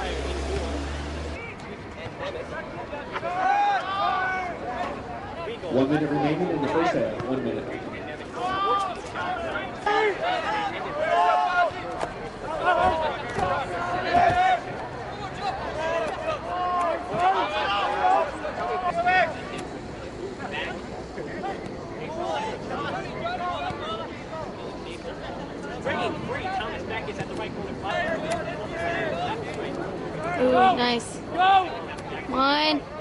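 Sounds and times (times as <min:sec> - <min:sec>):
crowd babble: 0:00.0 - 0:33.0
people shouting on a pitch: 0:03.1 - 0:04.9, 0:08.4 - 0:19.4.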